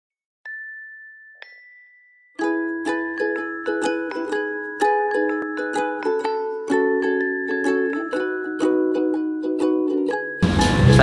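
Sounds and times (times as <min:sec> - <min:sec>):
bright chime notes: 0:00.5 - 0:05.7.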